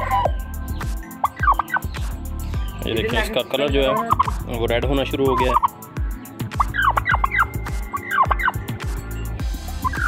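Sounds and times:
turkey gobbling: 0.0 - 0.4, 1.2 - 1.9, 3.8 - 4.4, 5.3 - 5.8, 6.5 - 8.6, 9.8 - 10.0.

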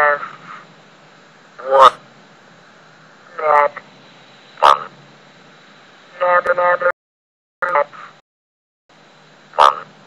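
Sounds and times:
text-to-speech voice speaking: 1.6 - 2.0, 3.3 - 3.8, 6.1 - 7.0, 7.6 - 8.1.

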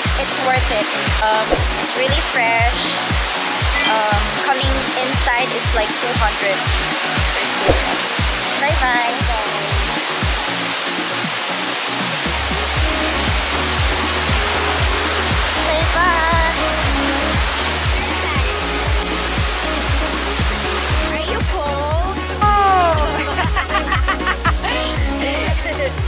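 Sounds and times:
waterfall rushing: 0.4 - 21.1.

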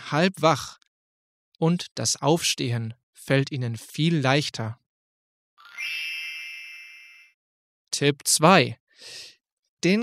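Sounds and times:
bright chime: 5.6 - 7.4.

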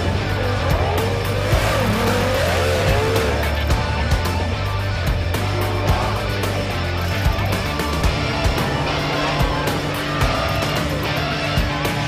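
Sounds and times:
background music with steady beat: 0.0 - 12.0
outboard engine revving: 0.0 - 12.0.

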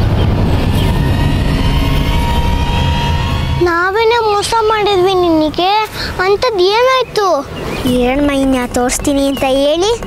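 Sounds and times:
high held tones: 0.0 - 6.2
low rumbling drone: 0.0 - 6.5.

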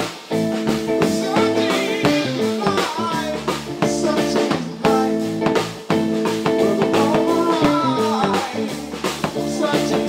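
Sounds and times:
bass notes: 0.0 - 10.0
drum kit with sharp hits: 0.0 - 10.0
electric guitar: 0.0 - 10.0.

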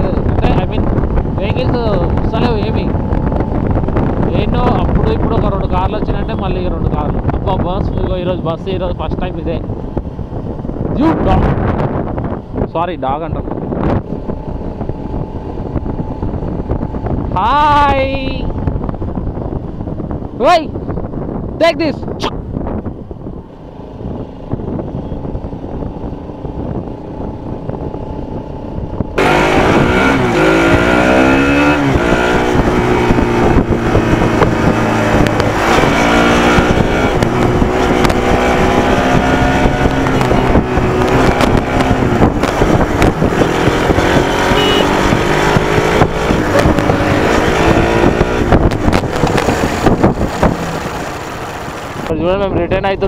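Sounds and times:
motorcycle engine accelerating: 0.0 - 21.6, 22.2 - 52.5.

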